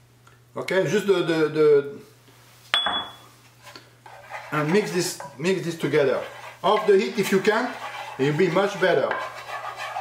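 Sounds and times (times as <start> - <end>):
ceramic ramekin clinking on pan: 2.8 - 3.2.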